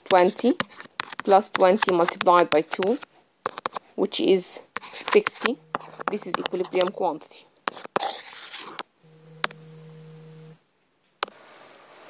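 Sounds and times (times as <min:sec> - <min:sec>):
steady low tone: 0:09.0 - 0:10.6.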